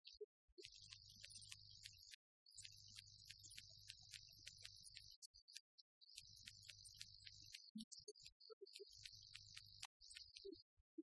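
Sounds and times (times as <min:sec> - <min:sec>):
soft ticks: 0:00.0 - 0:10.7.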